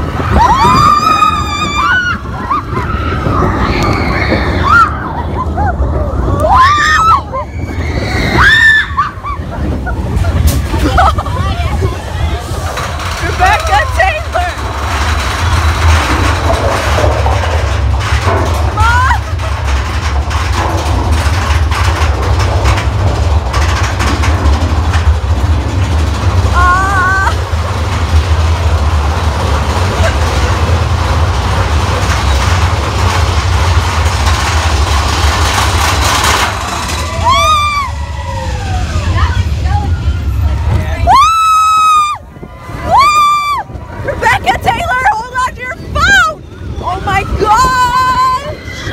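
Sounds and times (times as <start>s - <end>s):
ride vehicle rumbling: 0.0s - 48.9s
falling-pitch screams: 6.4s - 9.5s, 36.0s - 43.8s.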